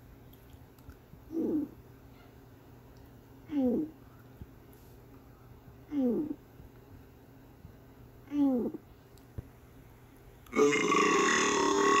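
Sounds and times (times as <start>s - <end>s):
long burp: 10.5s - 12.0s.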